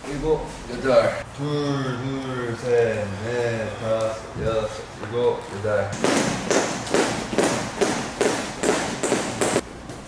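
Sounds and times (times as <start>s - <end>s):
jump ropes slapping floor: 6.0s - 9.6s.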